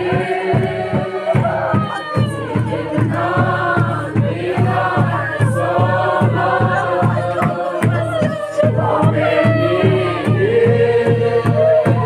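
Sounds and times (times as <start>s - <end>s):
group singing in unison: 0.0s - 12.0s
steady drum beat: 0.0s - 12.0s.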